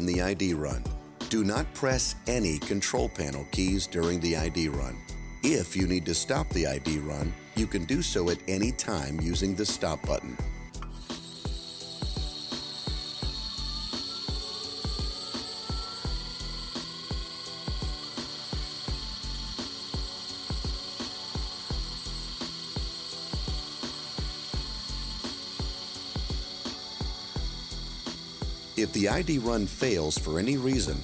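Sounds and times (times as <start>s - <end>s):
background music with steady beat: 0.0s - 31.0s
electric motor whining: 0.0s - 31.0s.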